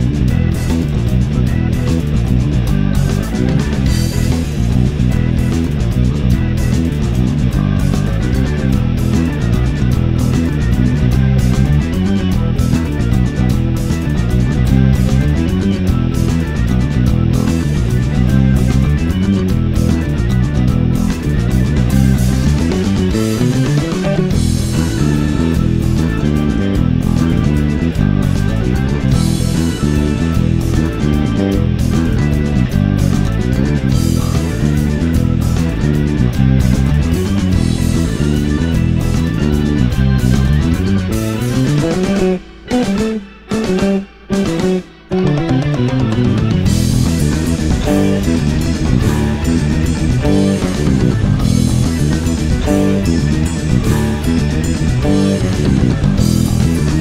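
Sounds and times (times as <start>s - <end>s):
electric guitar: 0.0s - 57.0s
loud bass guitar: 0.0s - 57.0s.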